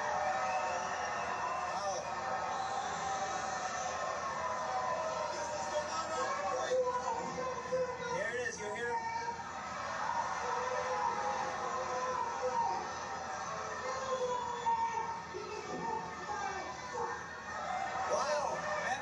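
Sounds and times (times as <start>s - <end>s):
crowd noise: 0.0s - 19.0s.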